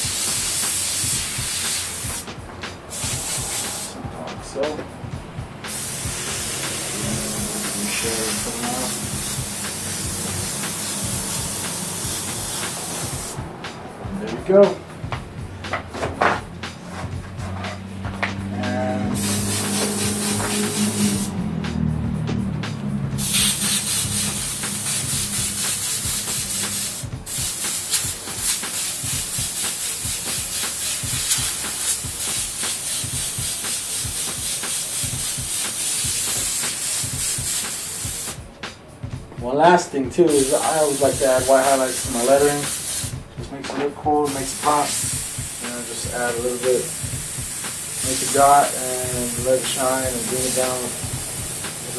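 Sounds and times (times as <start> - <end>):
airbrush hissing: 0.0 - 4.7, 5.7 - 13.4, 18.5 - 21.4, 23.1 - 38.4, 40.3 - 43.2, 44.2 - 51.9.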